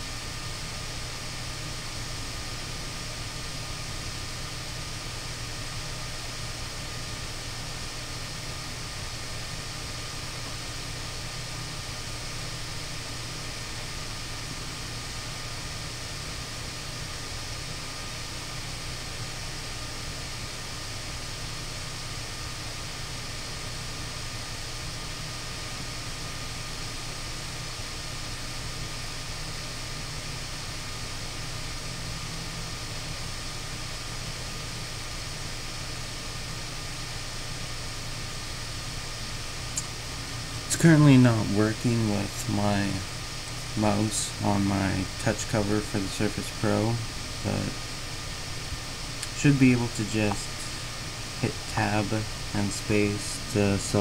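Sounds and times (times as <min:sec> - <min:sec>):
low hum: 0:00.0 - 0:54.0
steady background hiss: 0:00.0 - 0:54.0.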